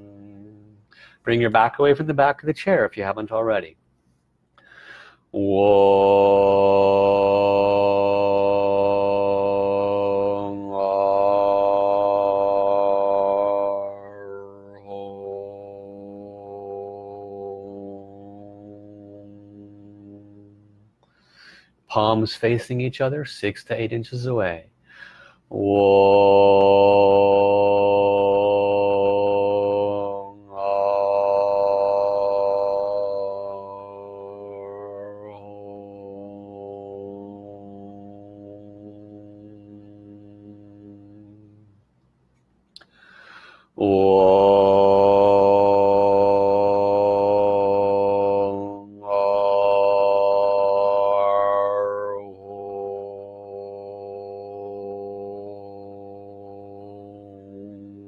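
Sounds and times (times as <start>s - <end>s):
man chanting: 1.3s - 3.8s, 5.4s - 20.6s, 21.9s - 24.6s, 25.5s - 41.6s, 43.8s - 58.0s.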